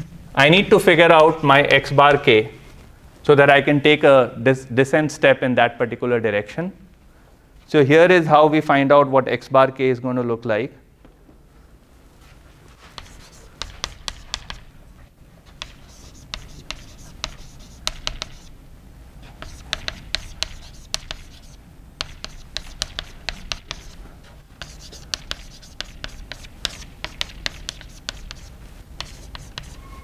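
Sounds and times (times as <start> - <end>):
chalk tapping and scratching: 12.8 - 14.7, 15.5 - 18.5, 19.2 - 30.0.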